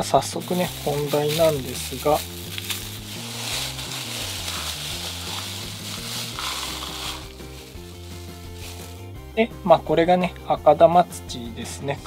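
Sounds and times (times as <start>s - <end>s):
soil granules trickling: 0.0s - 10.0s
plastic bag crinkling: 0.4s - 9.1s.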